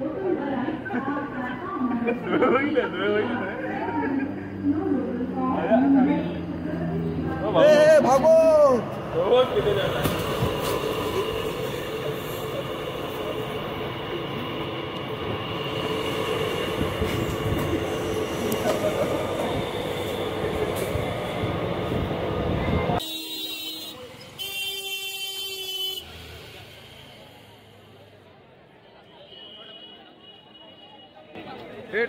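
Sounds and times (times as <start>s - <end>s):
train running noise with whine: 2.8s - 23.6s.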